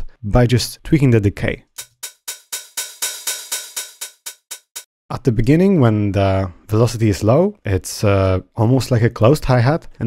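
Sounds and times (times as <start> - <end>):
hi-hat hits: 1.8 - 4.9.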